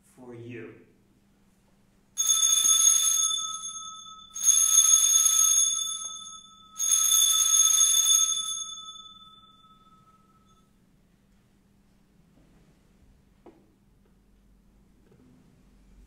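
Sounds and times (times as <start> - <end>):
altar bells ringing: 2.2 - 10.6.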